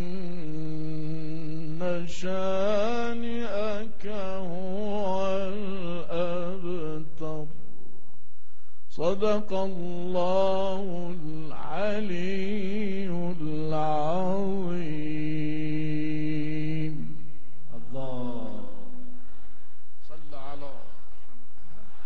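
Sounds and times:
man chanting melodically: 0.0s - 7.6s, 8.9s - 19.1s.

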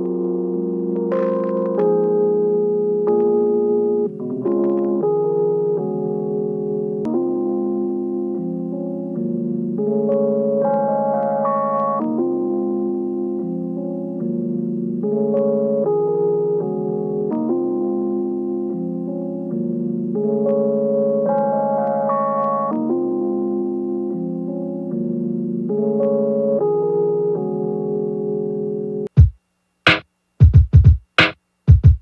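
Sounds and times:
jazzy electric piano chords: 0.0s - 29.1s.

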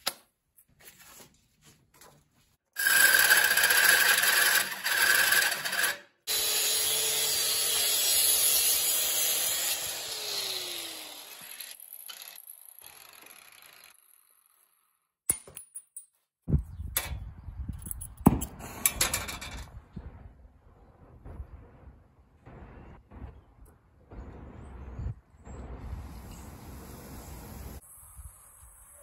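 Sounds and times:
angle grinder grinding steel: 2.8s - 14.6s.

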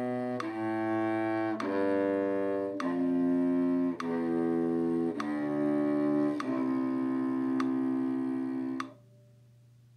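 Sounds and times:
cello bowing a low note: 0.0s - 9.0s
metronome clicks: 0.2s - 8.1s, 8.7s - 9.0s.

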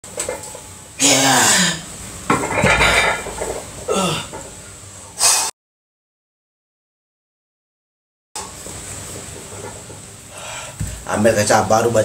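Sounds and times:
barbell weight plates clanking: 2.3s - 3.7s.

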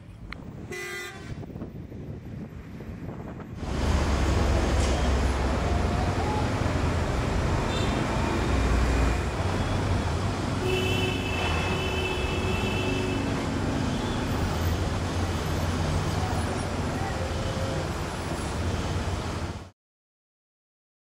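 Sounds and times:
street traffic rumble: 0.0s - 19.7s.

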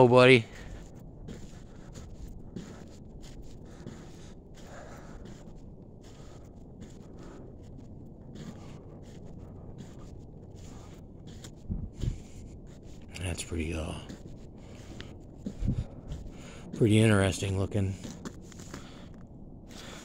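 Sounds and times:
outdoor background noise: 0.0s - 20.0s.

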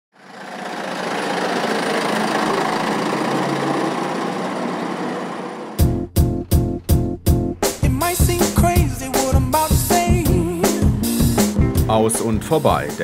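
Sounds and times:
truck driving past on wet road: 0.2s - 5.8s
music: 5.8s - 13.0s.

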